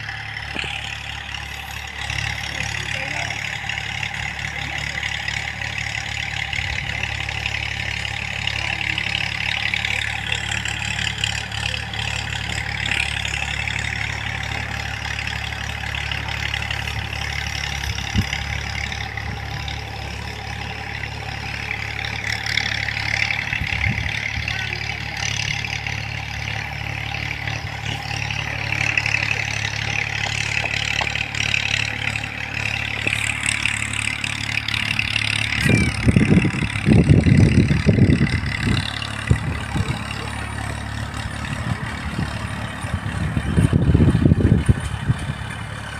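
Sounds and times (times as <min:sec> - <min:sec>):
tractor engine droning: 0:00.0 - 0:45.9.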